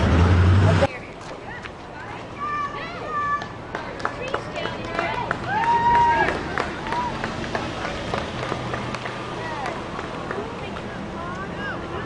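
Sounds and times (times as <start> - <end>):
children calling out and cheering: 1.5 - 7.4.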